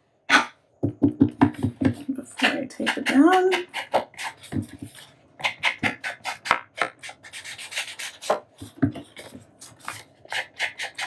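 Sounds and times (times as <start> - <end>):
foam tool scraping paper: 2.4 - 11.0.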